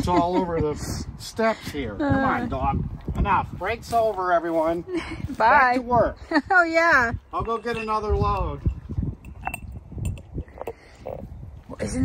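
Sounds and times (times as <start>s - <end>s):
glass dish clinking on stone: 7.3s - 10.3s.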